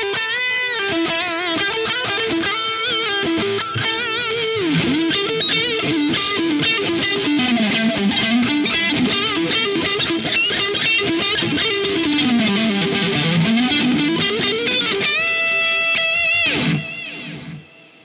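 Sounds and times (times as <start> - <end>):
distorted electric guitar lead: 0.0 - 18.0.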